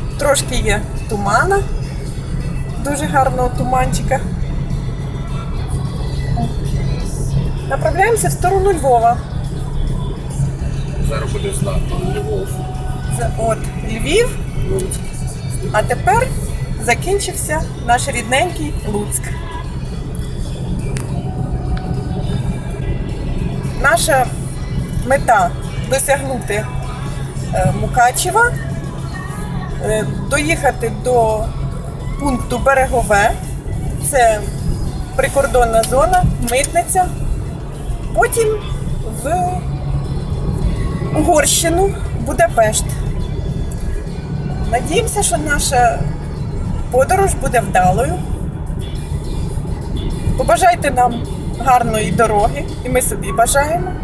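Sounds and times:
car engine and tyres drone: 0.0 - 54.0.

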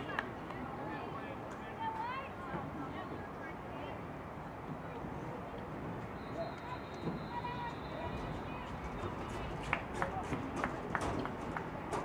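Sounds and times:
indistinct distant voices: 0.0 - 12.0
steady noisy background: 0.0 - 12.0.

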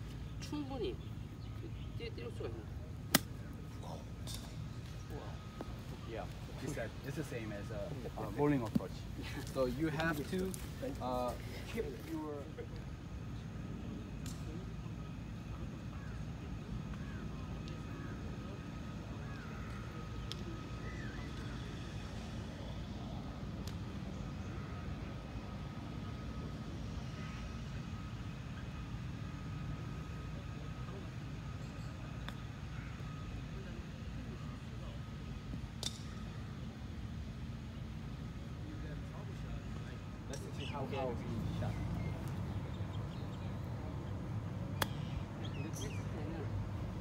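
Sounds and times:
faint distant voices: 0.0 - 47.0
faint high hum: 0.0 - 47.0.

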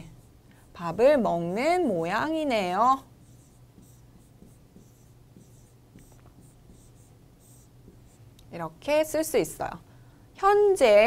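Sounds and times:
marker writing on board: 3.0 - 8.3.

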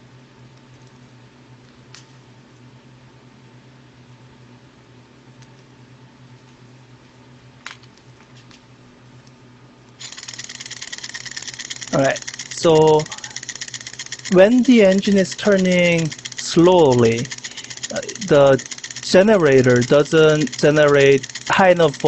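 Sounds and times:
low steady hum: 0.0 - 22.0
model engine rattling ticks: 10.0 - 22.0.

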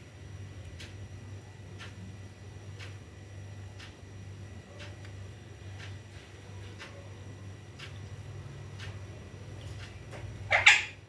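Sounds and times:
low room hum: 0.0 - 11.0
parakeet squawk: 10.5 - 11.0.

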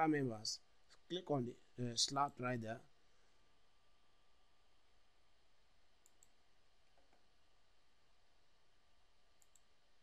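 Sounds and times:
computer mouse clicks: 6.0 - 7.2, 9.4 - 9.7.

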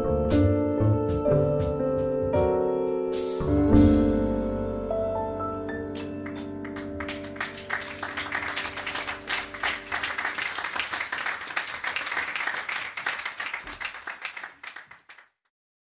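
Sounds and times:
audience applauding: 6.0 - 15.4.

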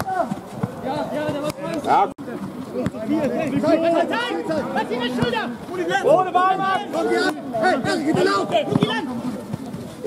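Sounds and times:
men calling out: 3.6 - 9.2.

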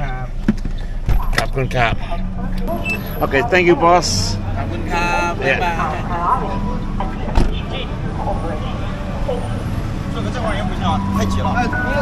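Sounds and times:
passing voices: 0.0 - 12.0
street traffic rumble: 0.0 - 12.0
car door shutting: 7.3 - 7.6.

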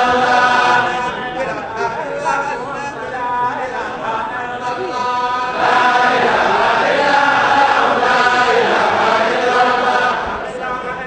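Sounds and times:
many voices chanting: 0.0 - 11.0.

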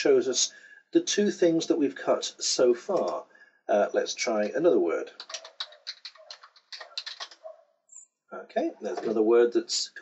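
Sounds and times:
typing on computer keyboard: 5.2 - 7.5.

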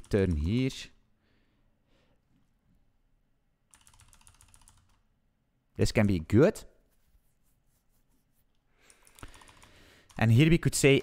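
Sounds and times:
keyboard typing: 3.7 - 5.0, 8.8 - 10.4.

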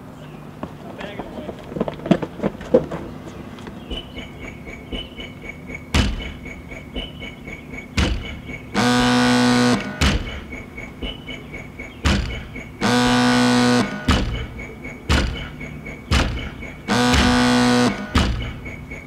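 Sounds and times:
techno beat: 3.8 - 19.0
car door slamming: 8.0 - 8.5, 10.0 - 10.5, 12.0 - 12.6, 14.1 - 17.4, 18.0 - 18.7
car horn: 8.0 - 11.1, 12.1 - 19.0.

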